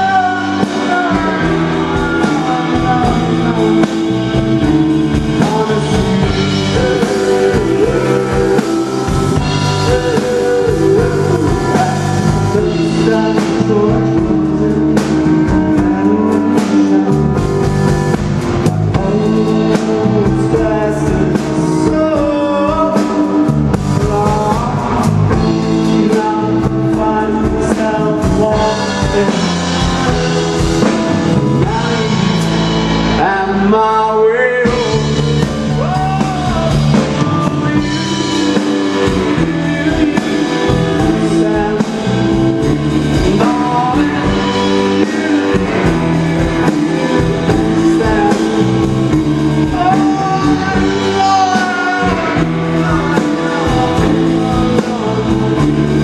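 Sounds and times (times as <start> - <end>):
live rock and roll band: 0.0 - 56.0
man singing into microphone: 0.0 - 56.0.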